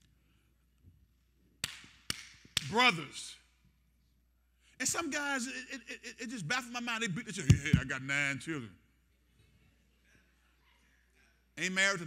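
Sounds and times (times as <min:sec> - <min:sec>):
sharp hand clap with echo: 0:01.6 - 0:02.8.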